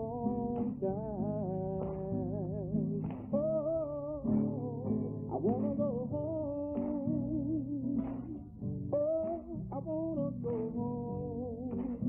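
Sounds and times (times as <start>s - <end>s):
guitar: 0.0s - 12.0s
person singing slow melody: 0.0s - 12.0s.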